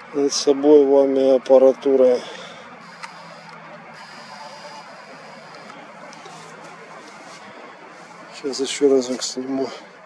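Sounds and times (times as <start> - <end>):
low outdoor hum: 0.0 - 10.0.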